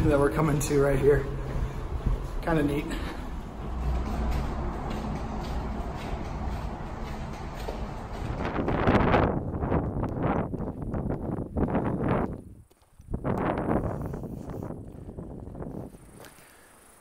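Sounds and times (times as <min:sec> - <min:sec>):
footsteps on a trail: 0:00.0 - 0:17.0
wind on microphone: 0:01.1 - 0:16.4.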